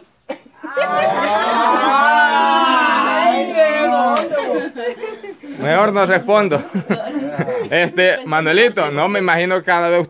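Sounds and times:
group of people laughing: 0.3 - 8.6.

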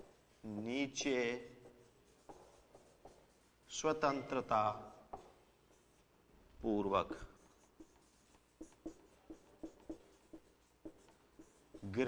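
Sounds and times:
person speaking: 0.0 - 5.9, 6.6 - 12.0
marker writing on whiteboard: 0.0 - 12.0.

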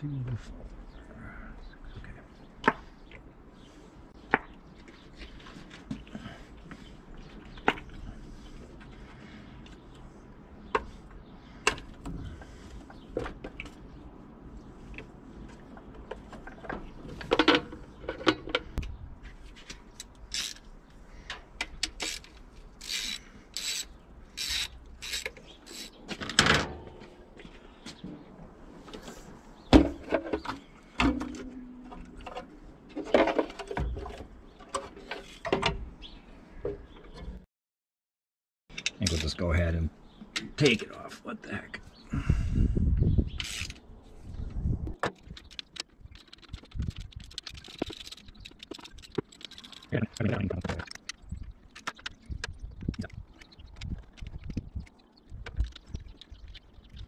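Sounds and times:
ratchet wrench strokes: 22.0 - 25.9, 43.4 - 43.8.

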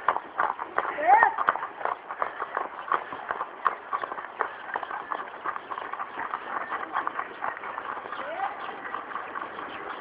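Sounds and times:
horse hooves on asphalt: 0.0 - 10.0.

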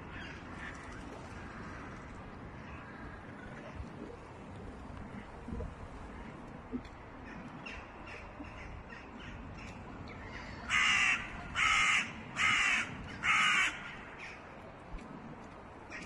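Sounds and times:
crow cawing: 10.4 - 14.4.

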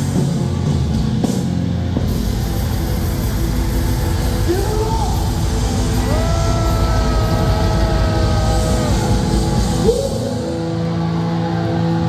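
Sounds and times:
live death metal music: 0.0 - 12.0.

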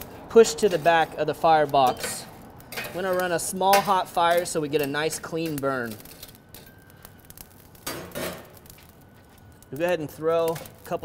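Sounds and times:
charcoal clinking on steel grate: 0.0 - 11.0.

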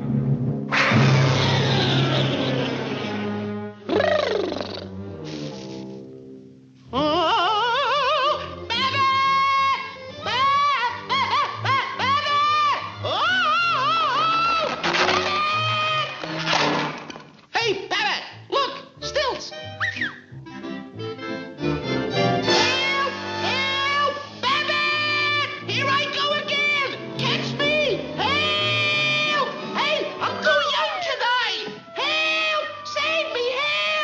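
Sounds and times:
orchestral cartoon music: 0.0 - 16.8, 18.7 - 34.0
loud noisy crash: 0.6 - 3.6.

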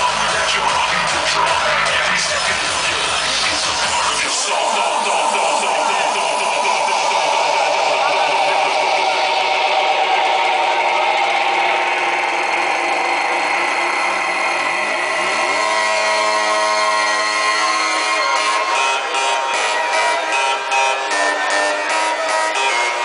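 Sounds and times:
loud hardstyle dance music: 0.0 - 23.0
noisy rising sweep: 4.5 - 21.1.

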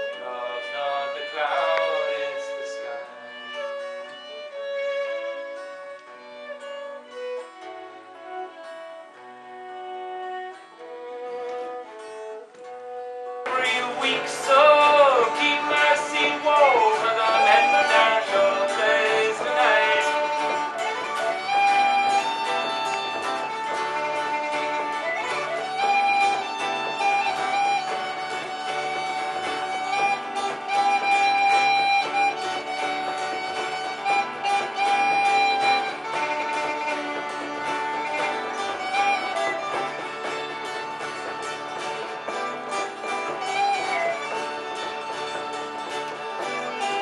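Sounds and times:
bowed string instrument melody: 0.0 - 47.0
strummed acoustic guitar: 0.0 - 47.0.

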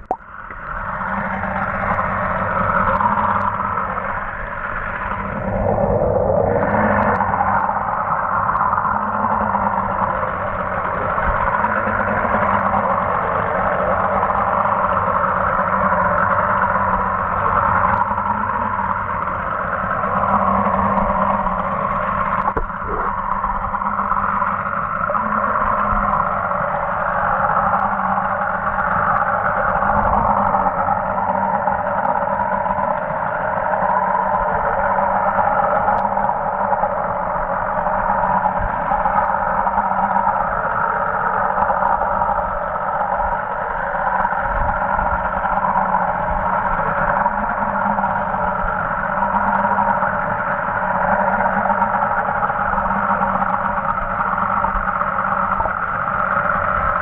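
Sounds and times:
low hum: 0.0 - 57.0
muffled underwater motor drone: 0.0 - 57.0.

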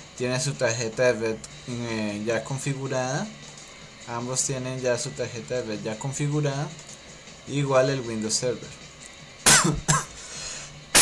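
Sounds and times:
man coughing: 9.4 - 10.3.

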